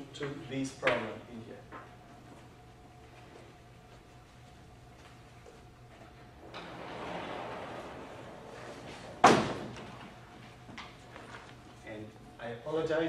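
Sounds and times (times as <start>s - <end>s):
chalkboard panel sliding: 6.4s - 10.1s.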